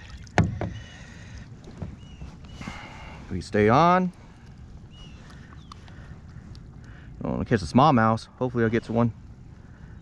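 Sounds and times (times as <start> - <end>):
faint water sounds: 0.0 - 10.0
board knocking on plastic hull: 0.4 - 0.8.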